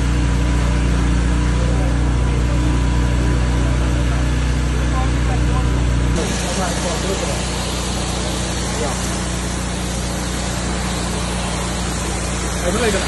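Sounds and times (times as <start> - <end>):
engine droning steadily: 0.0 - 13.0.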